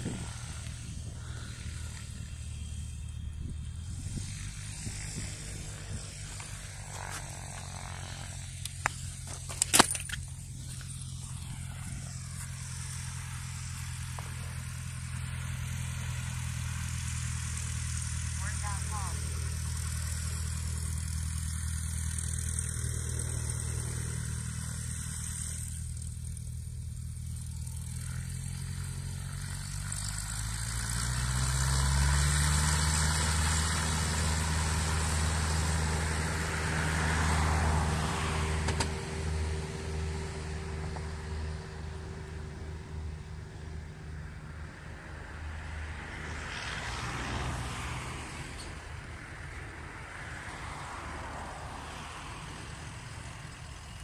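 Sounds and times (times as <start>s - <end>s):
light plane piston engine: 0.0s - 54.0s.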